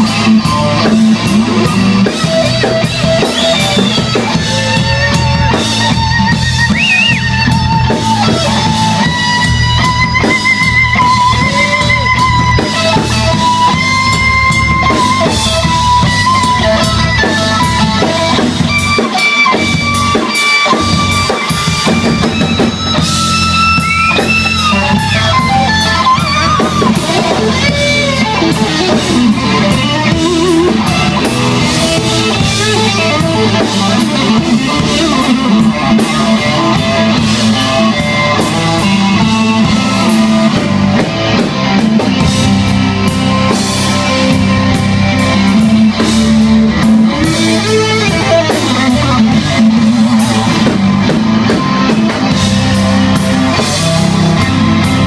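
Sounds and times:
blues band playing: 0.0s - 55.0s
electric guitar solo: 0.0s - 55.0s.

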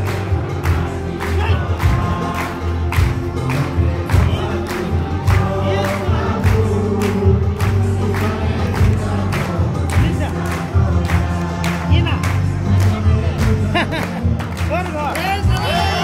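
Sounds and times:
group singing: 0.0s - 14.6s, 15.4s - 16.0s
loud music with steady beat: 0.0s - 16.0s.

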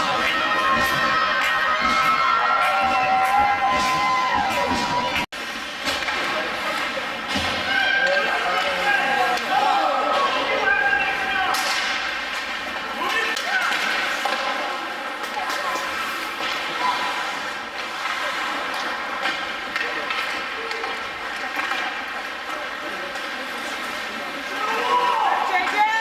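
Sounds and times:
crowd shouting and chattering: 0.0s - 26.0s
hockey stick striking puck: 11.5s - 15.6s.

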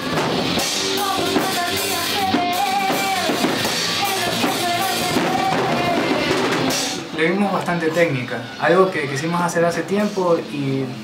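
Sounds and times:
woman singing long notes: 0.0s - 7.1s
metalcore band playing: 0.0s - 10.5s.

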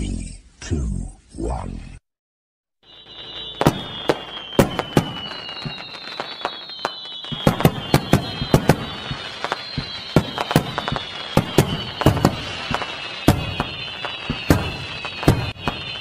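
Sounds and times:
fireworks bangs: 2.8s - 16.0s
fireworks whistles sliding down: 2.8s - 16.0s
fireworks crackling hiss: 2.9s - 16.0s.

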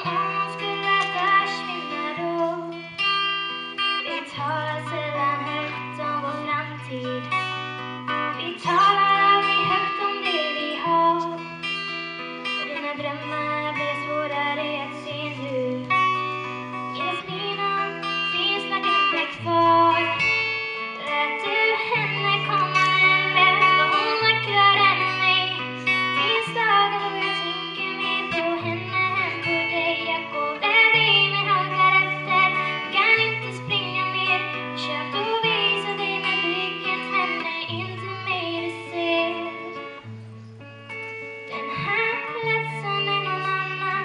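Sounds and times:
girl singing: 0.0s - 40.2s, 41.4s - 44.0s
acoustic guitar strumming: 0.0s - 44.0s.

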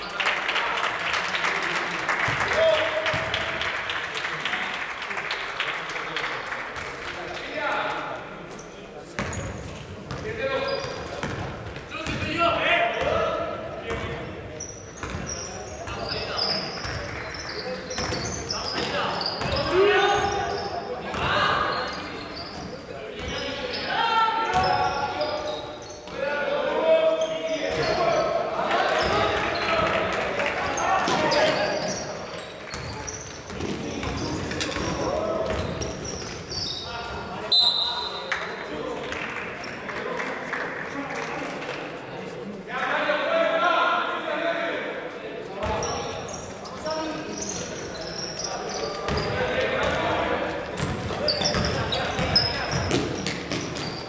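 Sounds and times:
basketball bouncing on court: 9.2s - 12.4s, 15.0s - 16.1s, 17.9s - 20.4s, 32.7s - 36.4s, 49.0s - 50.1s, 50.8s - 54.0s.

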